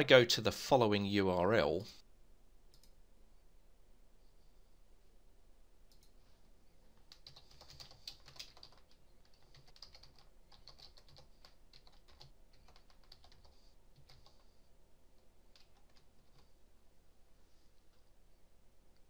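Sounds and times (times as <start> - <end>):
faint keyboard typing: 2.7 - 3.0, 5.9 - 6.2, 6.9 - 16.6.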